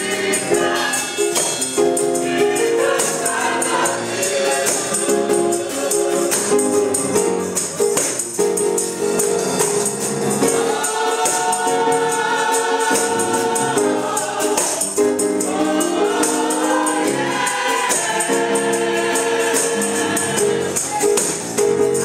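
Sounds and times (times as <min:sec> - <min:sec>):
choir singing: 0:00.0 - 0:07.4, 0:10.3 - 0:21.0
tambourine beat: 0:00.0 - 0:22.0.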